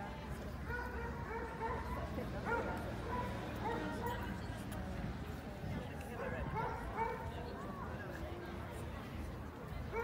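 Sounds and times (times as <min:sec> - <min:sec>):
dog barking: 0:00.7 - 0:01.9, 0:06.6 - 0:07.2.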